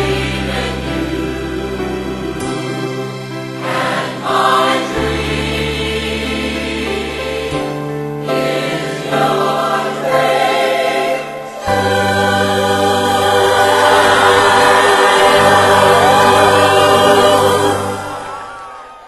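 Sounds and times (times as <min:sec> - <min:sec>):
choir singing: 0:00.0 - 0:19.0.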